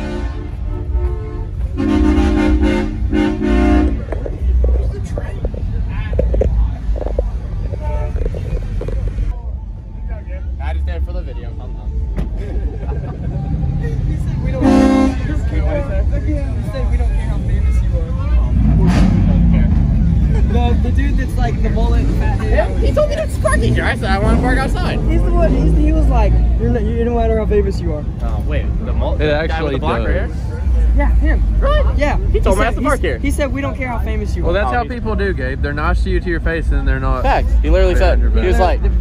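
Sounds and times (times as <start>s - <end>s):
vehicle horn toot: 0.0s - 4.1s, 14.6s - 15.5s
steady low rumble: 0.0s - 26.7s.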